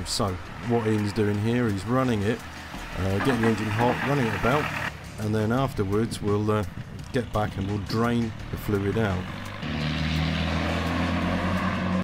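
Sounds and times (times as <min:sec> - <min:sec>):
diesel engine running: 0:00.4 - 0:11.2.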